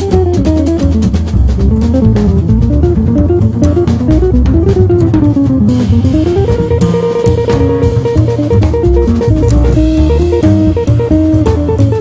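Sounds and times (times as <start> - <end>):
walking upright bass: 0.0 - 12.0
guitar single-note line: 2.1 - 12.0.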